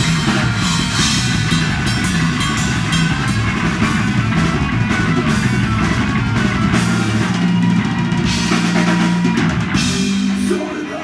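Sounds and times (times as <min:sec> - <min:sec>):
distorted electric guitar: 0:00.0 - 0:11.0
drum kit: 0:00.0 - 0:11.0.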